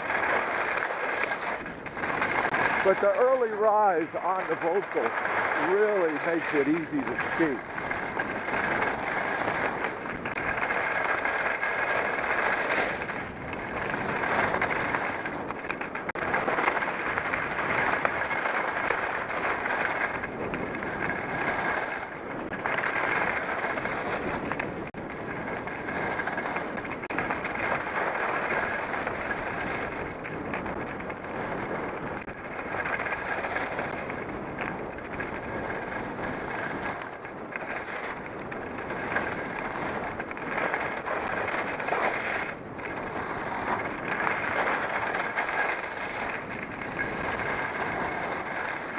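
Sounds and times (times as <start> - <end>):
ski edges scraping on snow: 0.0 - 48.9.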